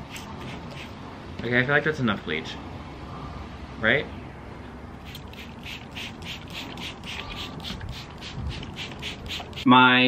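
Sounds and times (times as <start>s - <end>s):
spray bottle squirting: 0.1s - 1.0s, 5.0s - 9.7s.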